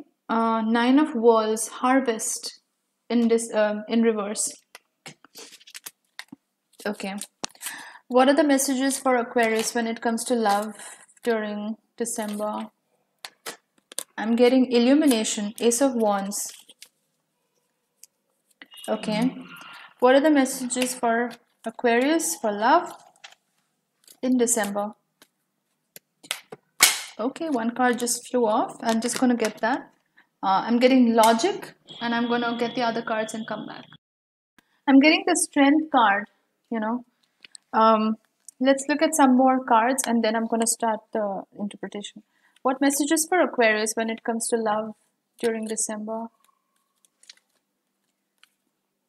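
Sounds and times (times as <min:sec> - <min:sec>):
cards shuffling clicks: 0:28.9 - 0:29.7.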